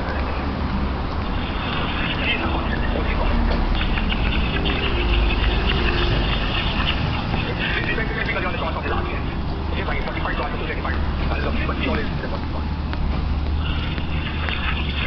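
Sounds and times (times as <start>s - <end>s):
indistinct voices: 0.0s - 15.0s
low street rumble: 0.0s - 15.0s
traffic: 0.0s - 15.0s.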